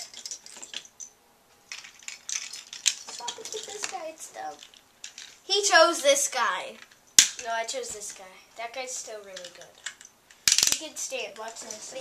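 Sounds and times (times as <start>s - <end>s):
spinning top parts clicking: 0.0s - 1.1s, 1.7s - 5.4s, 9.2s - 12.0s.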